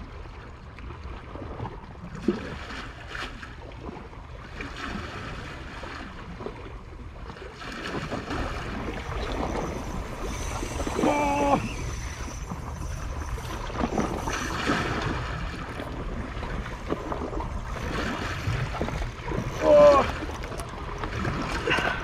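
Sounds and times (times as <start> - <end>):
water lapping against rocks: 0.8 - 22.0
person exclaiming: 11.0 - 11.8, 19.6 - 20.2.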